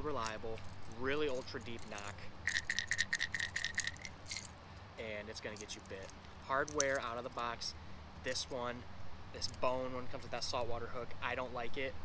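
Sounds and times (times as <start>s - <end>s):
fishing lure rattle clicking: 0.2s - 4.5s, 5.5s - 7.0s.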